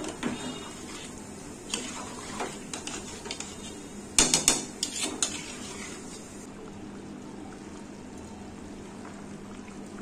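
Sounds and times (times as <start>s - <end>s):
utensil scraping metal pot: 0.0s - 6.4s.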